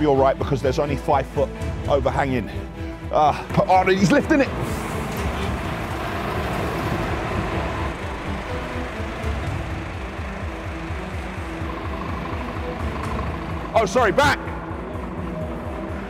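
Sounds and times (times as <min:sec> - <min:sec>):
background music: 0:00.0 - 0:16.0
forklift engine: 0:02.8 - 0:16.0
lorry engine running: 0:03.7 - 0:16.0.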